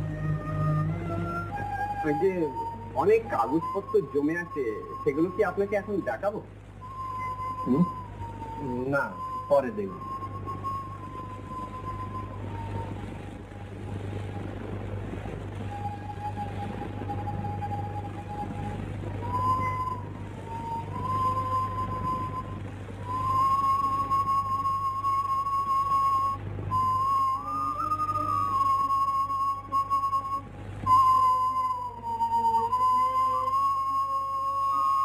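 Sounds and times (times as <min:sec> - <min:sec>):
slow flute-like melody: 0:00.0 - 0:35.0
steady low hum: 0:00.0 - 0:35.0.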